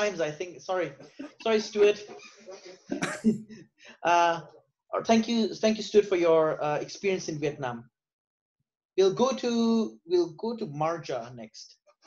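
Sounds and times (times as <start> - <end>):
person coughing: 2.9 - 3.4.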